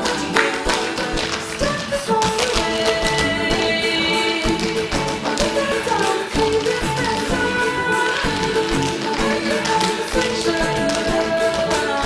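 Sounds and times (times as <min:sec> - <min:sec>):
music with held instrumental notes: 0:00.0 - 0:12.0
tap shoes striking stage floor: 0:00.0 - 0:12.0.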